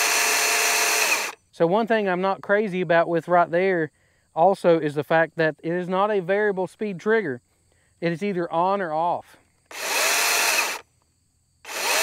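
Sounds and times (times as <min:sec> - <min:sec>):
battery chainsaw spinning: 0:00.0 - 0:01.4, 0:09.7 - 0:10.8, 0:11.7 - 0:12.0.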